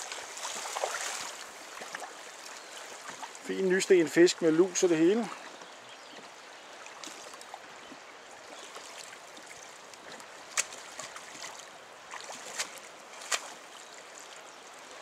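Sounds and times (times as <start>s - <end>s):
river water flowing: 0.0s - 15.0s
water splashes: 0.0s - 15.0s.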